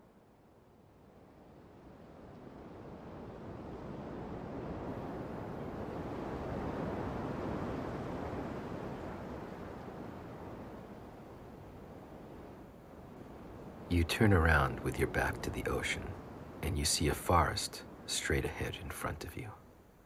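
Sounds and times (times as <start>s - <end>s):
ocean wave washing: 2.1s - 19.8s.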